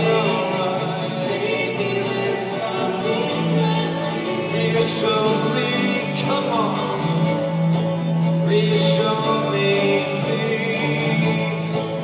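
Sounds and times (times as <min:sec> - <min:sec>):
acoustic guitar plucking: 0:00.0 - 0:12.0
held string notes: 0:00.0 - 0:12.0
mandolin plucking: 0:00.0 - 0:12.0.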